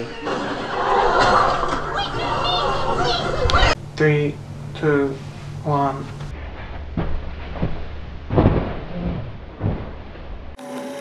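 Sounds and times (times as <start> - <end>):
steady hum: 0.0 - 11.0
low rumble: 1.7 - 10.6
rustling: 5.2 - 10.6
soft thumps: 6.3 - 10.6.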